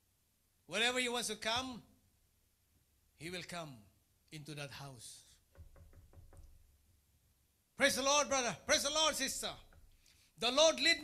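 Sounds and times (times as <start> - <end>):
knuckles knocking: 5.5 - 6.8, 9.6 - 10.0.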